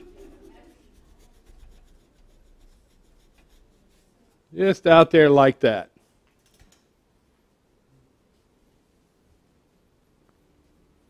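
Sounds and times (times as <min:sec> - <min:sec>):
paintbrush rubbing on canvas: 0:00.0 - 0:04.5.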